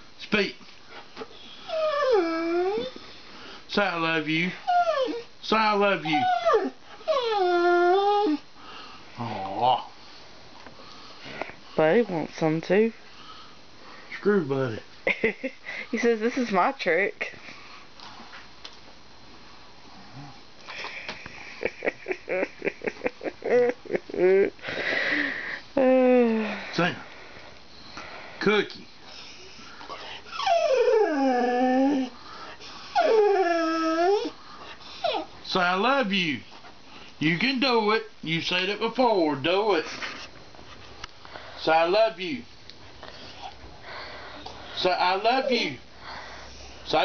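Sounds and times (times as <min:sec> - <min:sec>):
dog whining howl: 0:01.7 - 0:02.9, 0:04.7 - 0:05.3, 0:06.0 - 0:08.4, 0:30.3 - 0:32.2, 0:32.9 - 0:34.3, 0:35.0 - 0:35.3.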